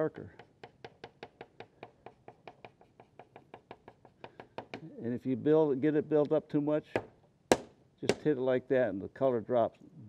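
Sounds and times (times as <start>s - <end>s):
pastel scratching on paper: 0.4s - 4.2s.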